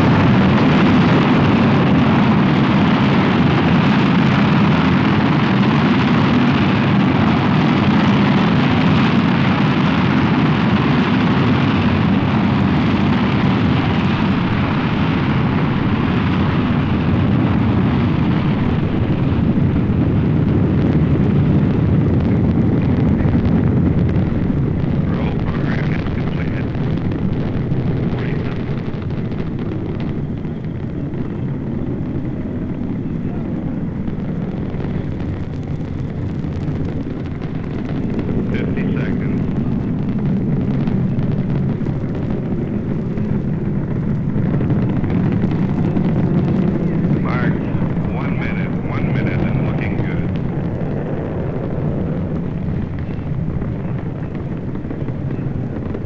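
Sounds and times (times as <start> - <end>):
rocket engines rumbling: 0.0 - 56.0.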